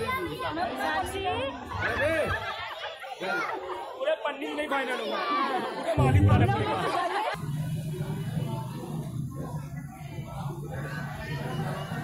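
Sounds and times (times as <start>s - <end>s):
crowd talking: 0.0s - 12.0s
loud low drone: 6.0s - 8.1s.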